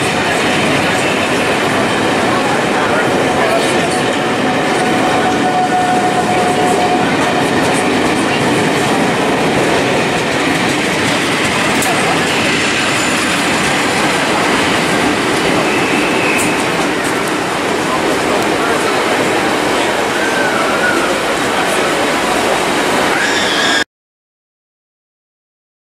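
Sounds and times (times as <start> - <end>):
diesel locomotive passing: 0.0 - 23.8
train coaches rumbling on rails: 0.0 - 23.8.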